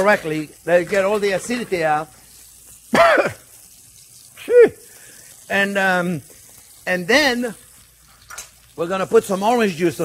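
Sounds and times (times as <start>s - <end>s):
pans sizzling: 0.0s - 10.0s
man coughing: 2.9s - 3.4s.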